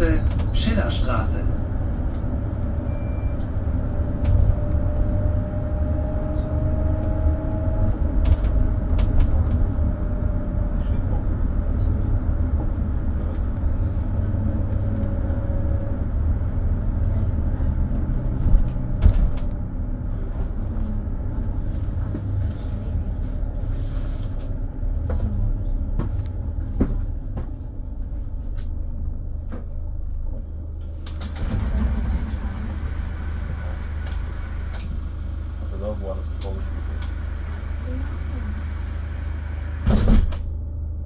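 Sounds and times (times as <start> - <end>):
minibus engine and road rumble: 0.0 - 41.0
body rattles and knocks: 21.7 - 28.8
faint whine: 40.4 - 41.0.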